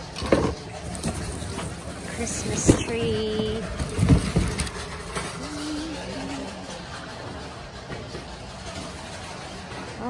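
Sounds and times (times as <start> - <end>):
store background noise: 0.0 - 10.0.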